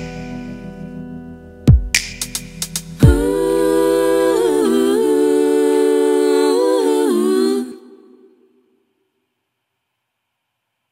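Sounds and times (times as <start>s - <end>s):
humming in vocal harmony: 3.0s - 8.8s.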